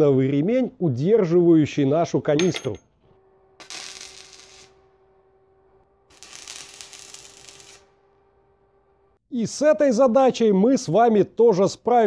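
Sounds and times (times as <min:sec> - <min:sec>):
arc welding crackling and hissing: 0:03.2 - 0:09.2.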